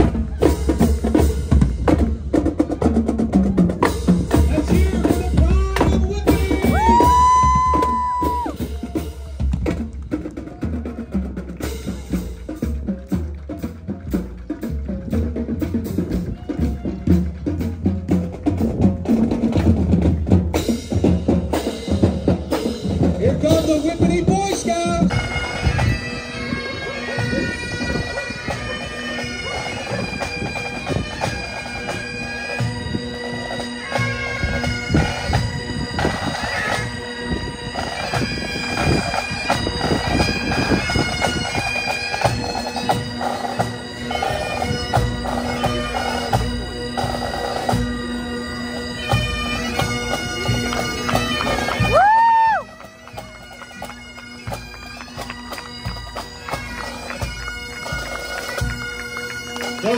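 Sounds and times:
snare and bass drums: 0.0s - 26.0s
bagpipes playing a tune: 23.5s - 59.9s
bagpipe squeal: 25.1s - 59.9s.

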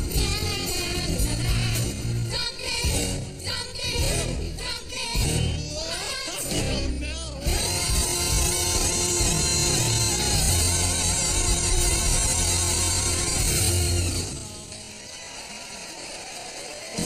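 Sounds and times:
band playing sustained bass notes: 0.0s - 3.4s, 6.5s - 14.7s.

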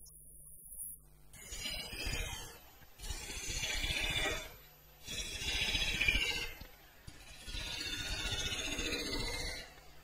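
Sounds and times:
hollowing tool scraping wood on lathe: 1.4s - 9.8s.

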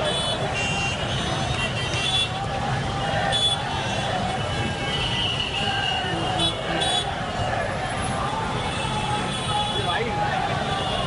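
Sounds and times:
crowd voices: 0.0s - 11.0s
road traffic: 0.0s - 11.0s.

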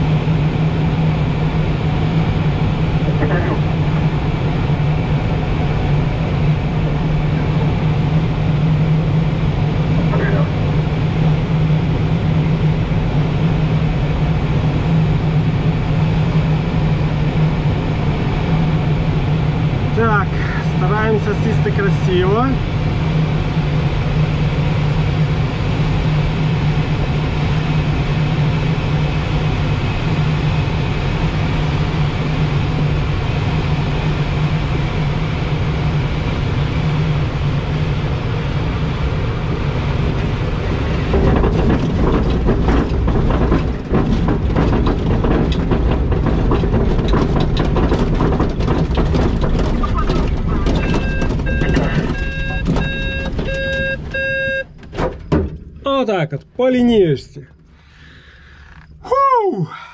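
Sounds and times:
airflow rushing over wing: 0.0s - 55.8s
short electronic beeps: 50.8s - 54.7s.

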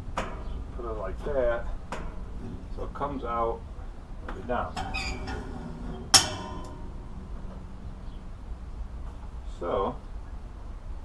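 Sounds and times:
metallic clank of pump handle: 4.7s - 7.5s.

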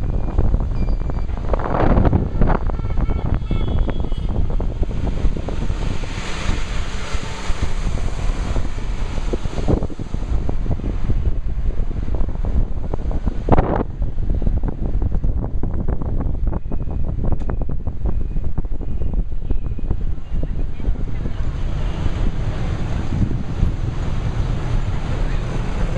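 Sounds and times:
car rumble: 0.0s - 25.9s
street traffic: 0.0s - 25.9s
wind buffeting microphone: 0.0s - 25.9s.

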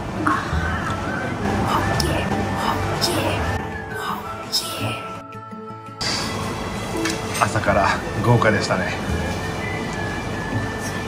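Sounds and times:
soft background music: 0.0s - 11.0s
steady background noise: 0.0s - 11.0s.

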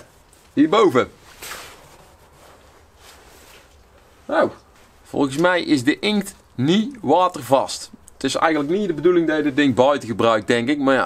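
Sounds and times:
clothing rustle: 0.0s - 5.7s
faint outdoor background: 0.0s - 11.0s.

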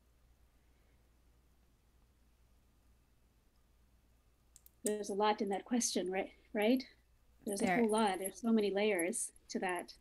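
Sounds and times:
woman speaking: 4.9s - 10.0s.

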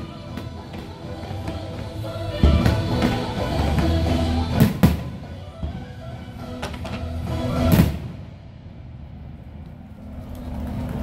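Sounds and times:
low rumbling of fireworks: 0.0s - 11.0s.

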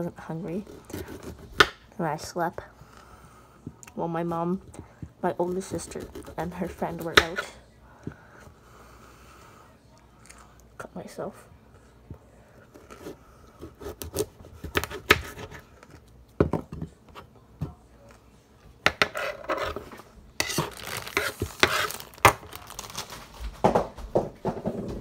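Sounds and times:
knife scraping: 19.0s - 22.1s.

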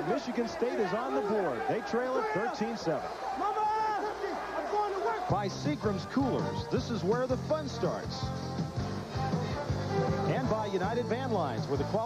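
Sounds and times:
man talking: 0.0s - 8.2s, 10.2s - 12.0s
faint stadium crowd: 0.0s - 12.0s.

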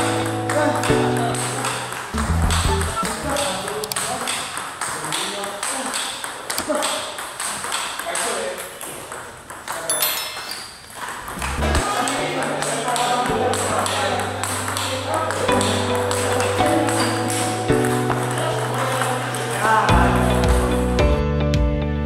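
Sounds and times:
background music: 0.0s - 3.6s, 11.4s - 22.0s
table tennis ball clicking: 0.9s - 19.5s.

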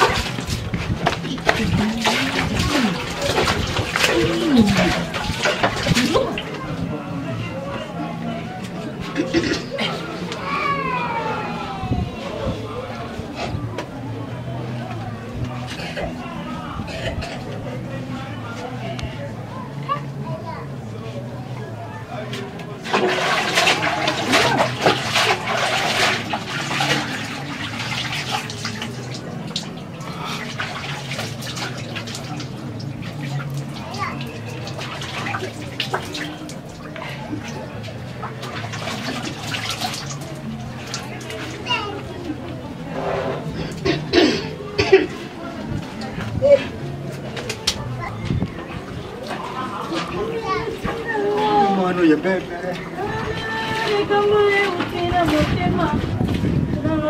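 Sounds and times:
children chattering: 0.0s - 57.0s.

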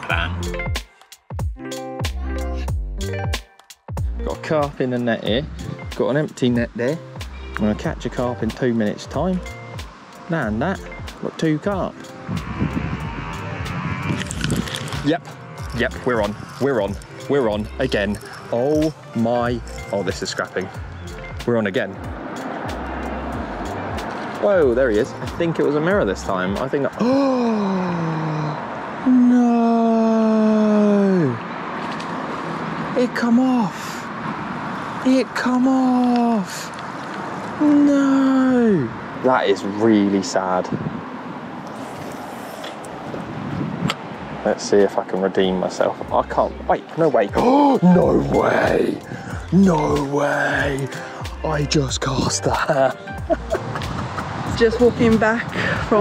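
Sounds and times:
wind buffeting microphone: 10.6s - 21.2s, 40.6s - 41.6s, 42.8s - 44.5s, 53.2s - 56.0s
man groaning in dismay: 27.0s - 31.4s, 47.4s - 49.0s.

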